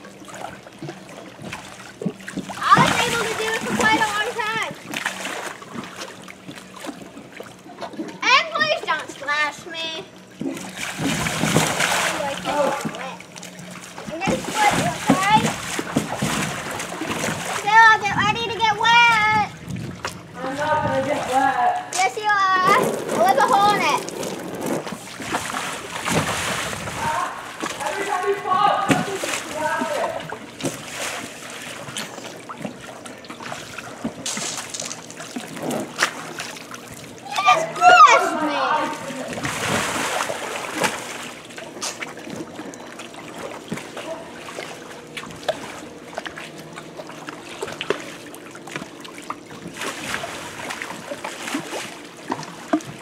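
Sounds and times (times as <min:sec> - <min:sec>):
pool water splashing: 0:00.0 - 0:53.0
children calling out: 0:37.2 - 0:39.0.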